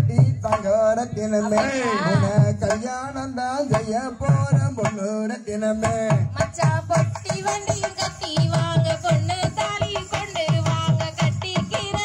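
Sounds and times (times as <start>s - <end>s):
folk singing: 0.1s - 12.0s.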